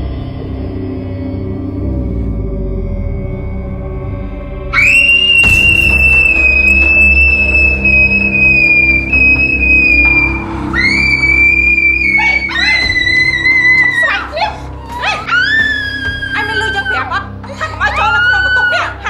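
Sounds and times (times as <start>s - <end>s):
music score with low drone: 0.0s - 19.0s
girl screaming: 10.8s - 19.0s.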